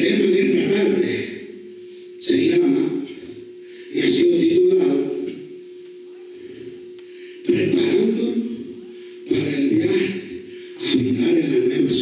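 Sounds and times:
man's amplified speech: 0.0s - 1.5s, 2.2s - 3.2s, 3.9s - 5.4s, 7.4s - 12.0s
low hum with high whine: 0.0s - 12.0s.

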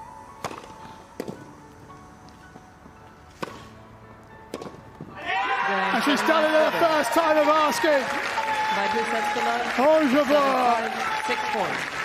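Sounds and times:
faint background music: 0.0s - 12.0s
racket striking tennis ball: 0.4s - 1.5s, 3.3s - 3.8s, 4.5s - 5.2s
crowd cheering: 5.1s - 12.0s.

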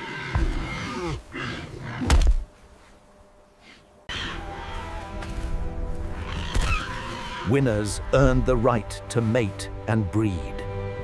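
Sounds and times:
background music: 4.1s - 11.0s.

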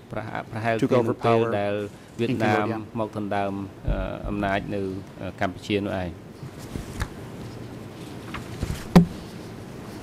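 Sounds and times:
man talking: 0.1s - 6.2s.

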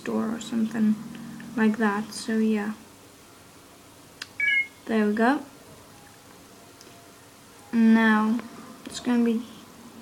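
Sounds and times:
short electronic beep: 4.4s - 4.8s.

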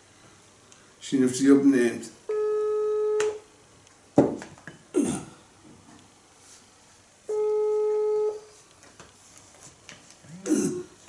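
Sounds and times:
telephone ringback tone: 2.3s - 3.4s, 7.3s - 8.5s
person's vocal noise: 10.2s - 11.0s.

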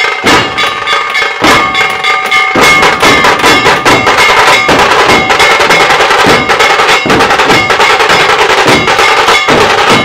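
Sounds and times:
bell-like metal strikes: 0.0s - 10.0s
rapid drumming: 0.0s - 10.0s.

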